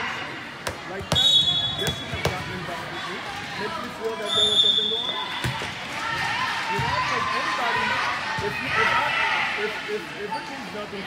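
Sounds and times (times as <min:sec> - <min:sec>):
people chattering: 0:00.0 - 0:11.0
volleyball serve strike: 0:00.6 - 0:02.5
volleyball bouncing on court floor: 0:00.6 - 0:02.6, 0:05.4 - 0:07.1
referee's whistle blasts: 0:01.1 - 0:02.2, 0:04.2 - 0:05.5.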